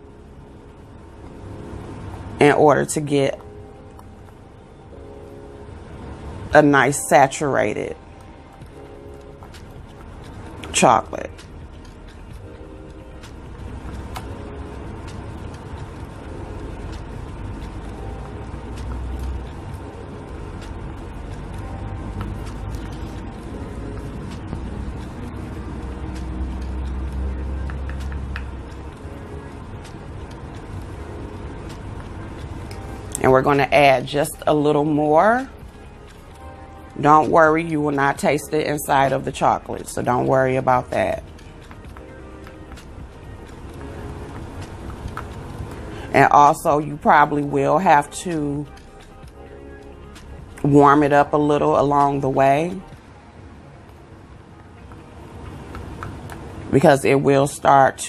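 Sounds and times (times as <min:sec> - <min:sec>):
faint background music: 0:00.0 - 0:58.0
low background hum and hiss: 0:00.0 - 0:58.0.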